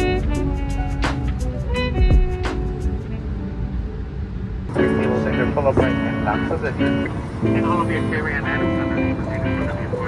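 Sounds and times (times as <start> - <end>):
music: 0.0 - 10.0
vehicle interior rumble: 0.0 - 10.0.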